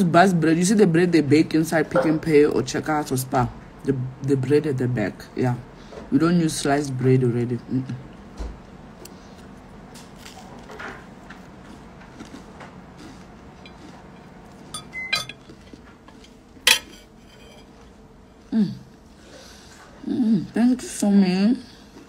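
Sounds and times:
fork clinking against plate: 13.6s - 17.7s
person humming: 18.5s - 18.9s.

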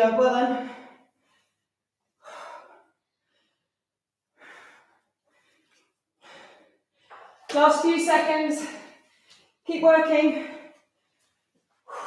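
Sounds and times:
woman breathing heavily: 0.6s - 7.5s, 10.4s - 12.0s.

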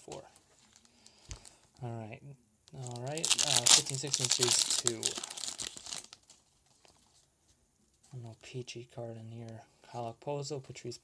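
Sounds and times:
foil wrapper tearing and crinkling: 2.8s - 6.4s.

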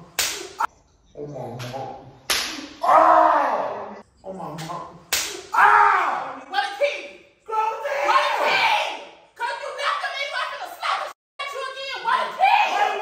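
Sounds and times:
slaps to the face: 0.2s - 0.6s, 1.6s - 2.8s, 4.6s - 5.5s.

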